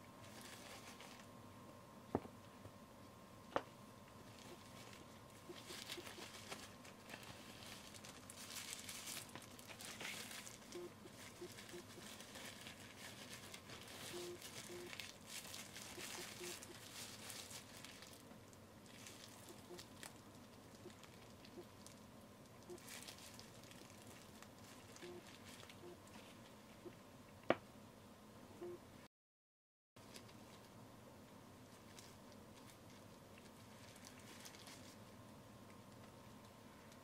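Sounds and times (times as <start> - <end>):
disposable glove crinkling: 0.2 - 1.4, 4.1 - 26.7, 30.0 - 30.8, 31.6 - 35.2.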